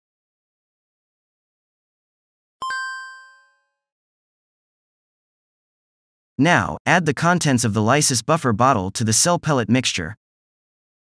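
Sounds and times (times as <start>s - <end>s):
bell-like chime: 2.6s - 3.8s.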